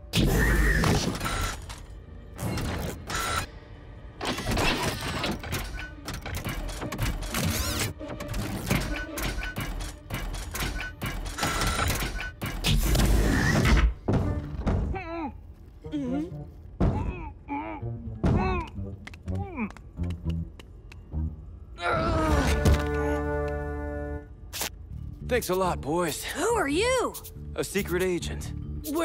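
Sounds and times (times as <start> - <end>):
background music: 0.0 - 29.0
clanks and thuds: 13.7 - 15.0.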